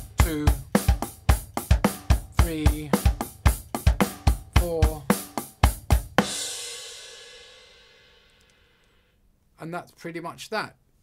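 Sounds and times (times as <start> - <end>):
electronic drum kit groove: 0.0 - 8.5.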